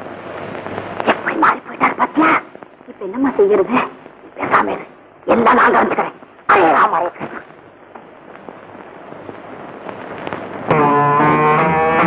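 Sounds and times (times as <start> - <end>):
crackling film hiss with clicks: 0.0 - 12.0.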